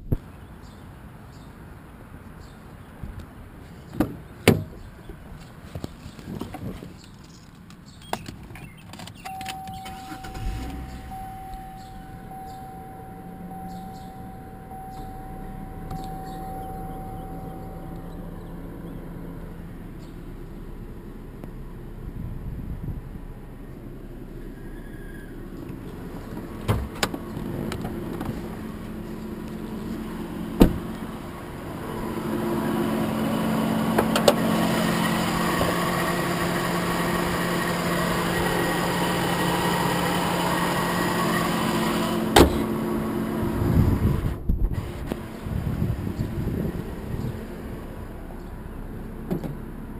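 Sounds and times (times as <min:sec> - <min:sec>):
car engine idling: 0:00.4 - 0:49.9.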